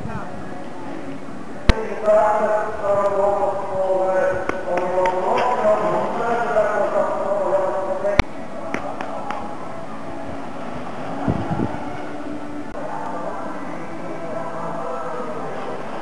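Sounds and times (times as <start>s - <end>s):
distant announcer speech: 0.0s - 16.0s
outdoor background hiss: 0.0s - 16.0s.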